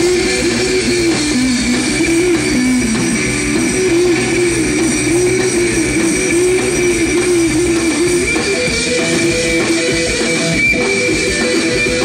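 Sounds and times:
drums: 0:00.0 - 0:12.0
electric guitar: 0:00.0 - 0:12.0.

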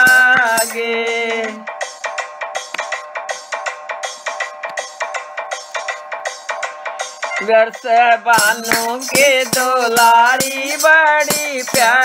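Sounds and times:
light percussion: 0:00.0 - 0:07.6, 0:08.3 - 0:12.0
electronic keyboard melody: 0:00.0 - 0:11.9.

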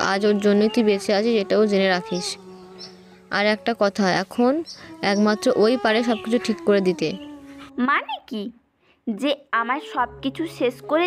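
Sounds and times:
person speaking: 0:03.3 - 0:11.0.

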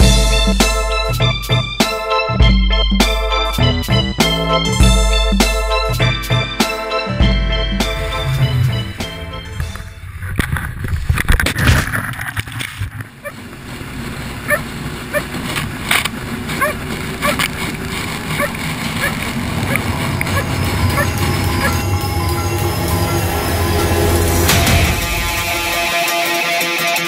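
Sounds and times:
music: 0:00.0 - 0:10.0, 0:19.8 - 0:27.0
outboard motor running: 0:13.4 - 0:24.6.

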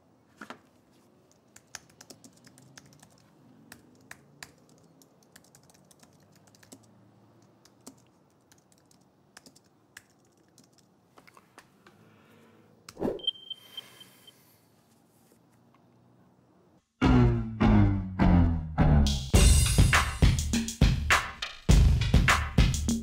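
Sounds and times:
typing on computer keyboard: 0:01.2 - 0:11.0.

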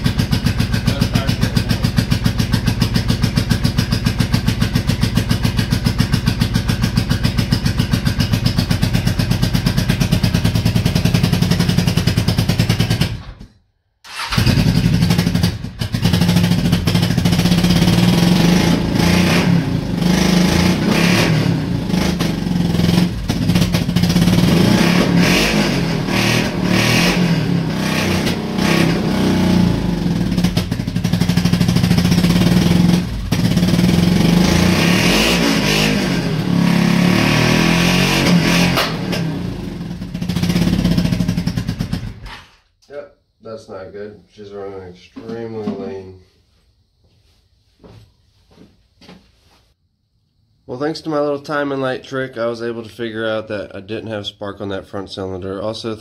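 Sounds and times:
motorcycle engine revving unevenly: 0:00.0 - 0:13.3, 0:14.2 - 0:42.3.

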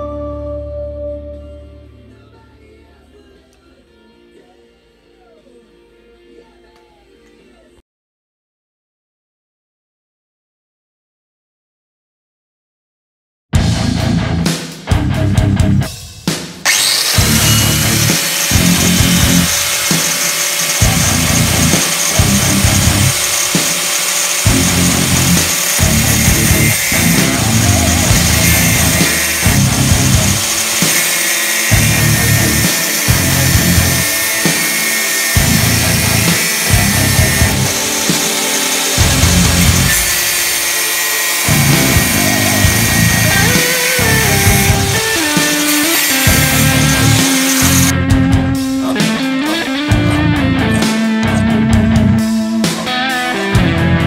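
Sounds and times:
angle grinder cutting metal: 0:16.7 - 0:48.0
music with steady beat: 0:17.2 - 0:40.6, 0:41.3 - 0:54.0.

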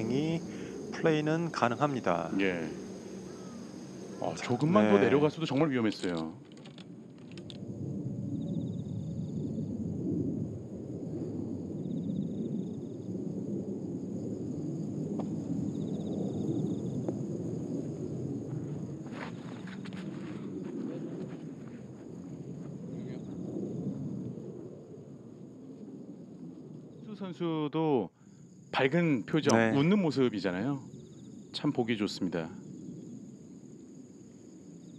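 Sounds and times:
low murmur of open-air noise: 0:00.0 - 0:34.9.

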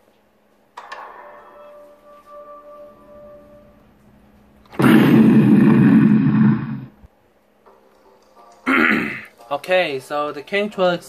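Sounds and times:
loud burst of noise: 0:04.7 - 0:07.0.

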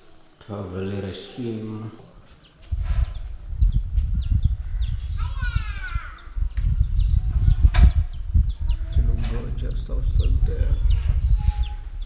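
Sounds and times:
birds chirping: 0:00.0 - 0:12.0
wind buffeting microphone: 0:02.2 - 0:12.0.

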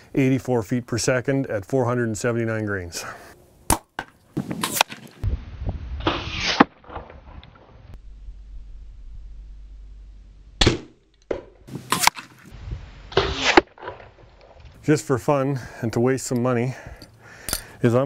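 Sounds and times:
bow string release crack: 0:10.6 - 0:12.5.

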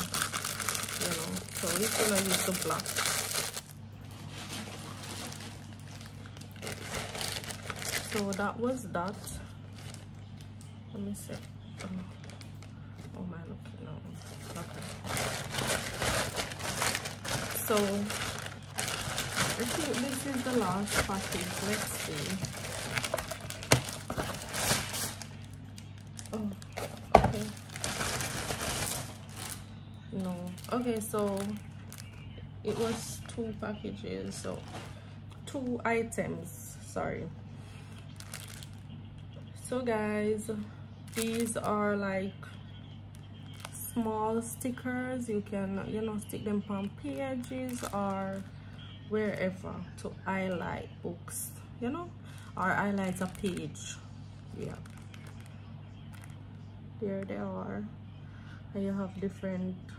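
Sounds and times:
plastic packaging crinkling: 0:00.0 - 0:13.1, 0:14.1 - 0:33.6, 0:37.9 - 0:39.0, 0:41.1 - 0:42.0, 0:43.1 - 0:44.2, 0:46.1 - 0:49.5, 0:52.3 - 0:56.5
steady low hum: 0:00.0 - 0:59.9.

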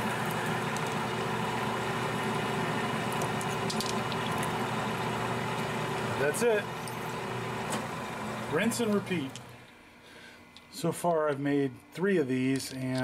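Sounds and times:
lathe motor hum: 0:00.0 - 0:09.7.

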